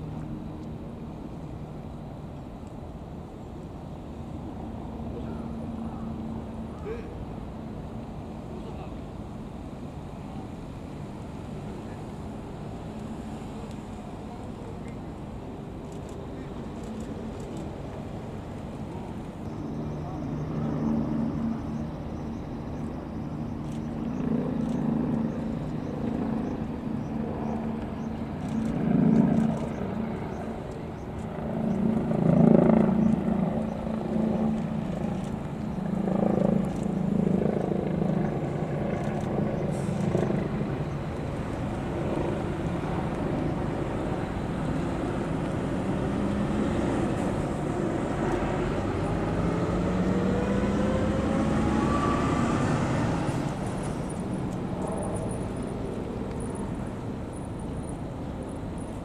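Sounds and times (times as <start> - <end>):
cars driving past: 39.6 - 57.6
car engine revving up: 48.6 - 53.4.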